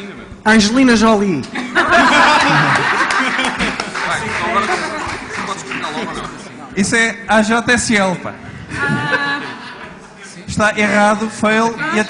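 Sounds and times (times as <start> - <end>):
group of people laughing: 1.5 - 6.5, 8.7 - 10.1.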